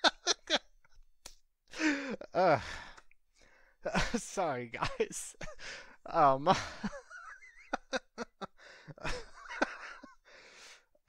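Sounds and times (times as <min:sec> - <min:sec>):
man laughing: 0:00.0 - 0:00.6, 0:03.9 - 0:10.2
man sighing: 0:01.7 - 0:03.6.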